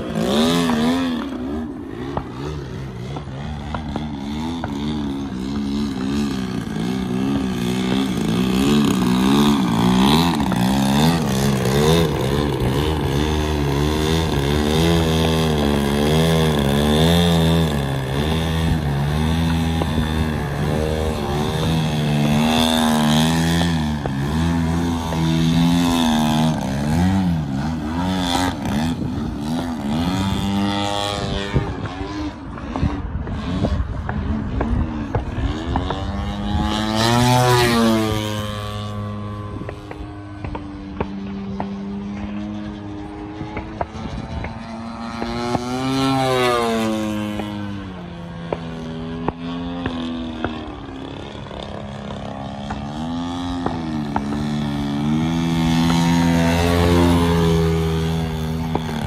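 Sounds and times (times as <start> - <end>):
model airplane engine and propeller: 0.0 - 59.0.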